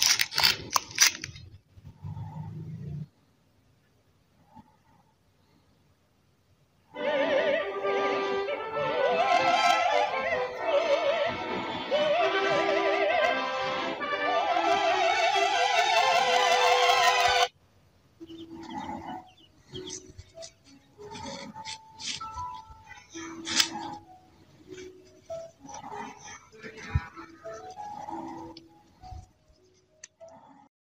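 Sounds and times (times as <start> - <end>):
high operatic singing: 7.0 - 17.5.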